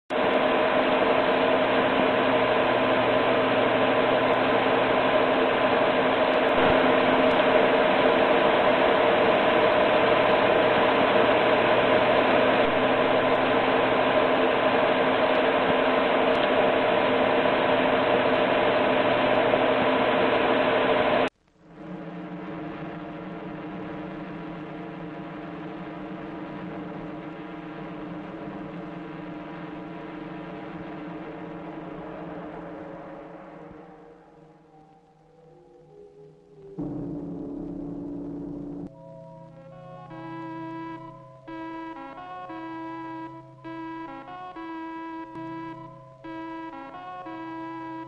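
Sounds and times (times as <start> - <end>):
loud steady rushing noise: 0.1 - 34.6
steady hum: 0.1 - 48.0.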